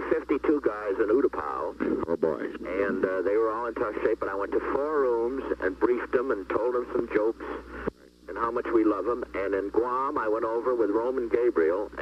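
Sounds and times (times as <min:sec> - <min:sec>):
man talking over a telephone line: 0:00.0 - 0:07.6, 0:08.3 - 0:12.0.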